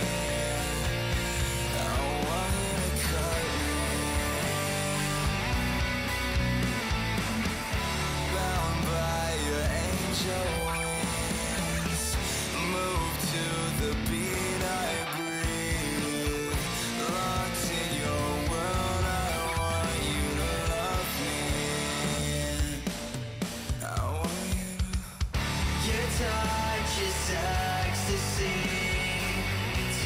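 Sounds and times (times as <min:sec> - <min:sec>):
man singing: 0:00.0 - 0:05.6, 0:08.0 - 0:30.0
rock song electric guitar: 0:00.0 - 0:30.0.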